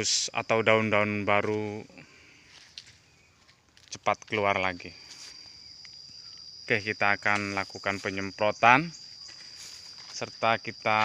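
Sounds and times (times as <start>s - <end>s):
man speaking: 0.0s - 2.0s, 3.9s - 5.0s, 6.7s - 9.0s, 10.1s - 11.0s
faint outdoor ambience: 0.0s - 11.0s
rustles: 1.3s - 6.6s, 7.2s - 11.0s.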